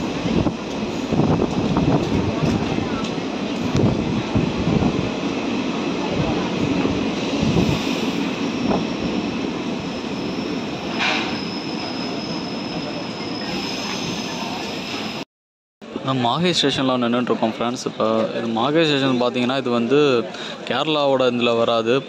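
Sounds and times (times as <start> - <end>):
train wheels rumbling on rail: 0.0 - 15.2
high squeal from wheels: 9.8 - 15.2.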